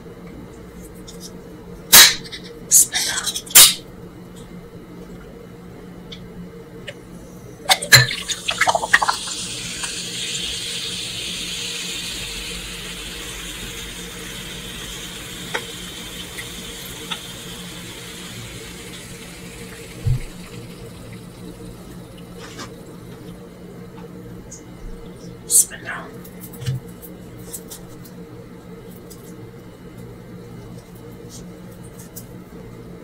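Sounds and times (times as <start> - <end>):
soda pouring into glass: 7.8 - 23.4
fizzing hiss: 8.1 - 23.3.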